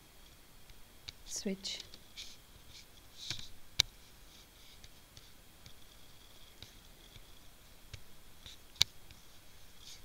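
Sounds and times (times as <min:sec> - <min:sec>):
soft rustle: 0:00.1 - 0:10.0.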